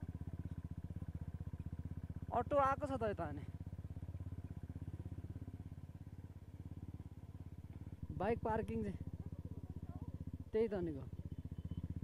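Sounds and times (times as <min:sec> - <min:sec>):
motorcycle engine at low speed: 0:00.0 - 0:12.0.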